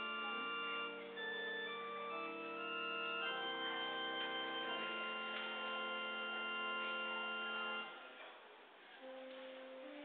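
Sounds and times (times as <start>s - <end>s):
pipe organ chords: 0.0s - 8.0s, 9.0s - 10.0s.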